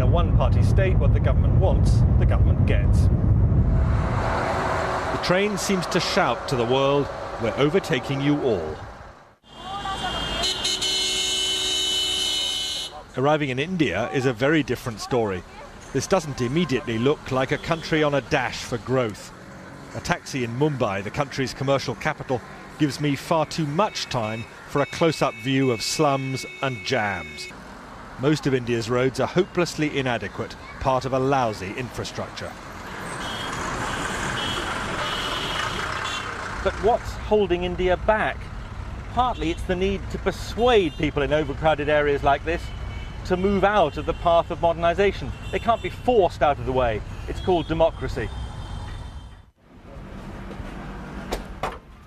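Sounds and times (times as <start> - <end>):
street traffic rumble: 0.0 - 52.0
vehicle horn long blast: 9.4 - 13.0, 23.9 - 27.5, 33.2 - 36.4, 42.6 - 44.5.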